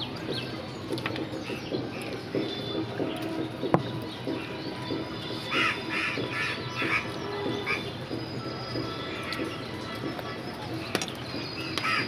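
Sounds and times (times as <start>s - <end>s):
background music with low notes: 0.0s - 12.0s.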